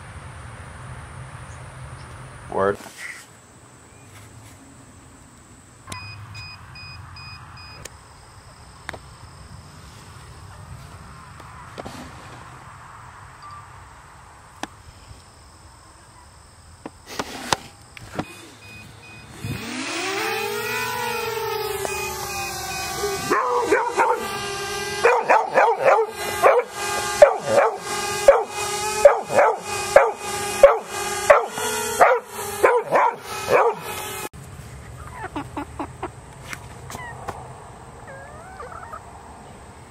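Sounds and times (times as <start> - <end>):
drone motors whining: 5.1 - 34.3
dog barking: 23.3 - 24.3, 25.0 - 33.8.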